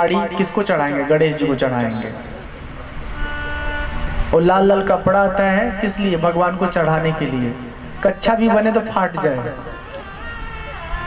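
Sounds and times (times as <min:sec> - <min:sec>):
steady horn tone: 0:01.8 - 0:11.0.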